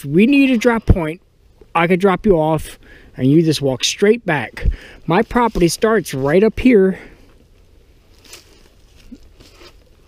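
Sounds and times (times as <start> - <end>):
low steady rumble: 0.0 - 10.0
footsteps in dry leaves: 5.0 - 6.5, 8.0 - 10.0.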